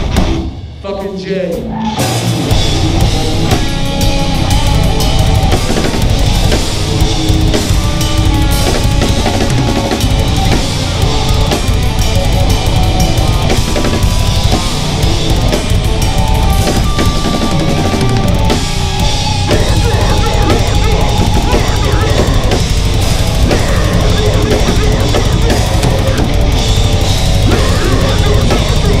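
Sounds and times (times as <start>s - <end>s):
deathcore band playing live: 0.0s - 29.0s
fast kick drum and cymbals: 2.2s - 29.0s.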